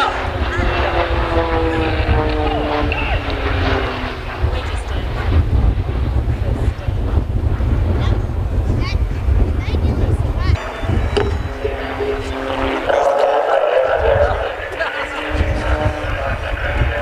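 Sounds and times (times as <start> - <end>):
turboprop plane passing: 0.0 - 17.0
wind rumble on microphone: 0.0 - 17.0.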